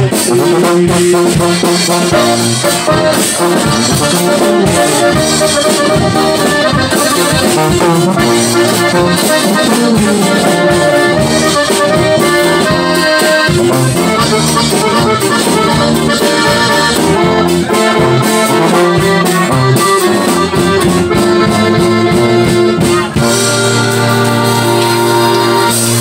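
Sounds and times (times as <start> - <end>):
button accordion melody: 0.0 - 26.0
tuba bass line: 0.0 - 26.0.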